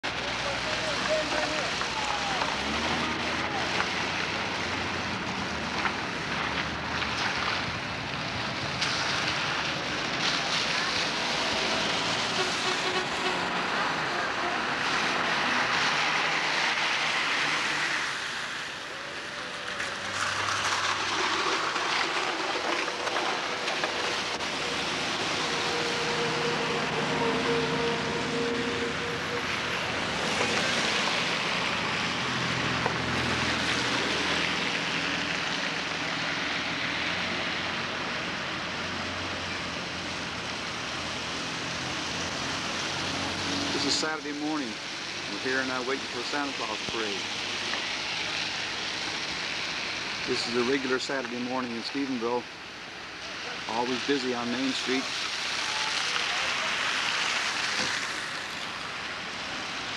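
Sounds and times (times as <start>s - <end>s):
tyre hiss on wet road: 0.1s - 59.9s.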